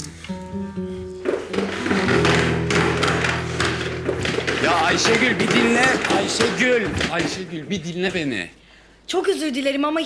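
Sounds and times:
background music: 0.0s - 7.6s
footsteps down wooden stairs: 1.2s - 8.4s.

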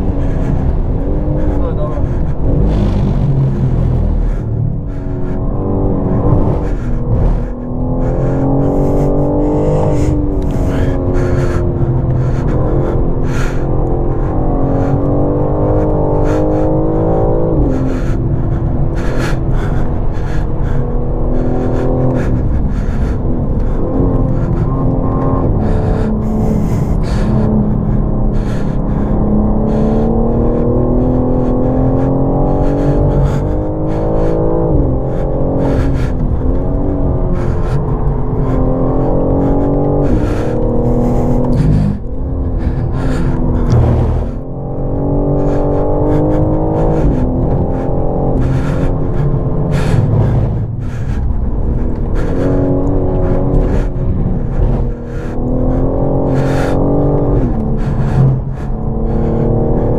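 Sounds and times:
car engine revving with gear changes: 0.0s - 59.9s.

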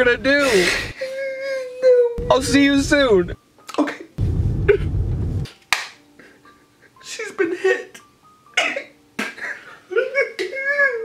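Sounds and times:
man sobbing and wailing: 0.2s - 2.3s, 8.6s - 11.0s
low rumble: 2.2s - 3.4s, 4.2s - 5.5s.

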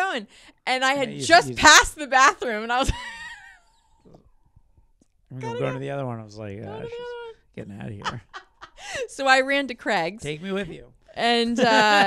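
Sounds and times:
person laughing: 5.4s - 9.0s, 11.5s - 12.0s.

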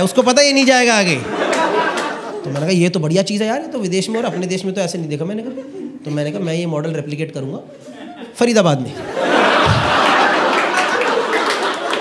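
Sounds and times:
audience laughing: 0.5s - 2.8s, 7.7s - 12.0s
audience clapping: 1.0s - 2.8s, 9.6s - 12.0s.

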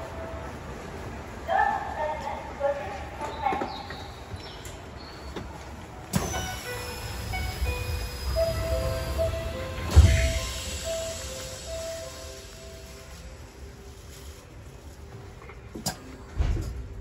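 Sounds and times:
train door chime: 6.2s - 13.2s
sliding doors shutting thud: 8.6s - 10.8s.

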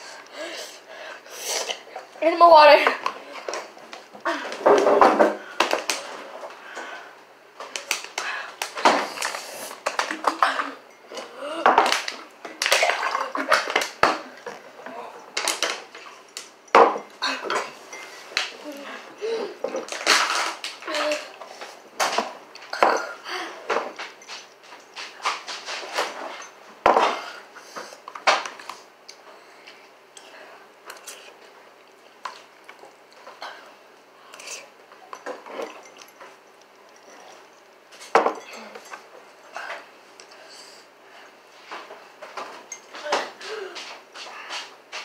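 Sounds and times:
forks clinking against bowls: 34.4s - 37.4s.

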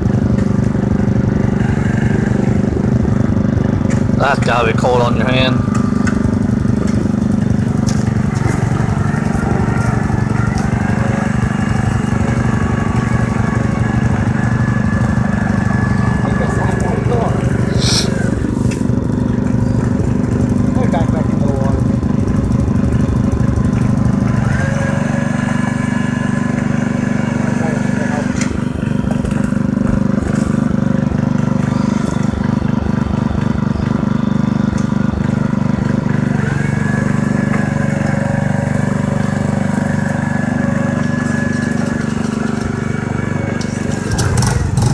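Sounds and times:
atv engine running: 0.0s - 44.9s
atv driving through water: 28.8s - 44.9s.

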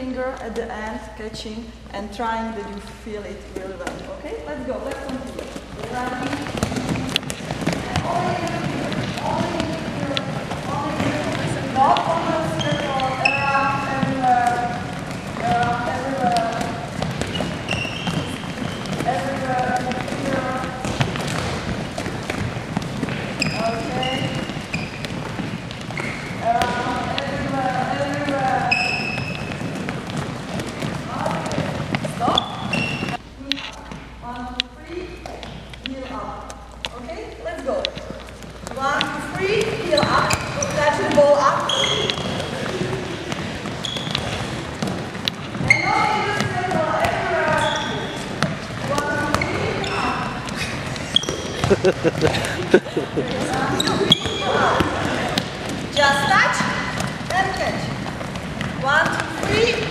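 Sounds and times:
balls bouncing on wooden floor: 3.5s - 59.9s
players chattering and calling: 4.5s - 34.6s, 35.7s - 59.9s.

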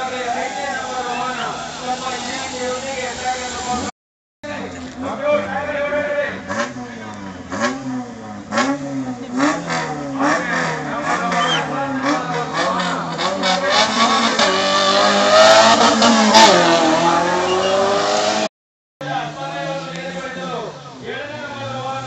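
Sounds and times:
engine revving: 6.3s - 18.5s
vehicle accelerating away: 6.4s - 18.5s.

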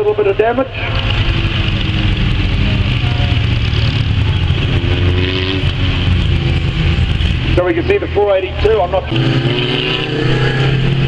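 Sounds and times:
racing car engines: 0.0s - 11.0s
car passing close: 0.4s - 11.0s.

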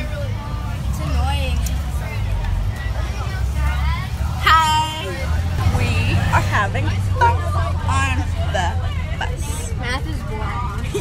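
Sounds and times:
bus rumbling: 0.0s - 11.0s
passengers chattering faintly: 0.0s - 11.0s.

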